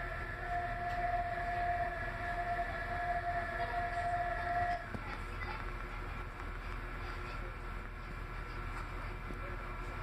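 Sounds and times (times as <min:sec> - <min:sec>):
train rumble: 0:00.0 - 0:10.0
train whine: 0:00.0 - 0:10.0.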